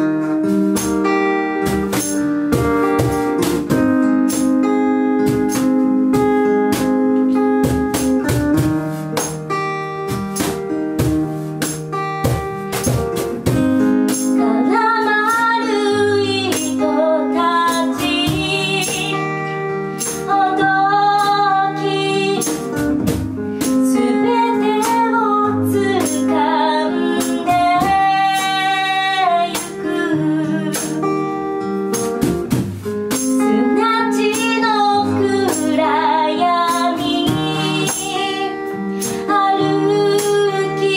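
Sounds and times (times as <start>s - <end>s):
strummed acoustic guitar: 0.0s - 40.9s
woman singing: 14.1s - 23.0s, 23.6s - 31.6s, 33.2s - 40.9s.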